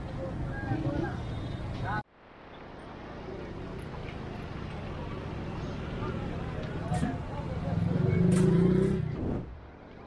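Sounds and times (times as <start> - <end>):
steady traffic noise: 0.0 - 10.0.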